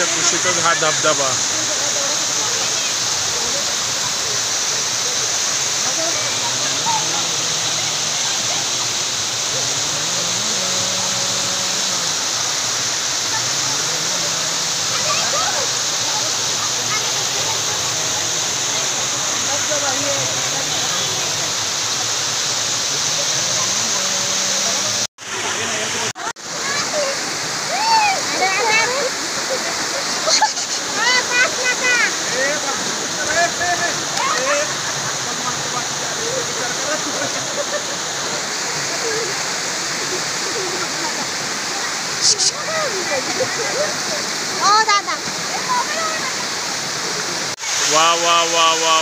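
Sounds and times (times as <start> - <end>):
people talking: 0.0 - 12.1, 13.2 - 22.1, 22.8 - 49.0
waterfall rushing over rocks: 0.0 - 49.0.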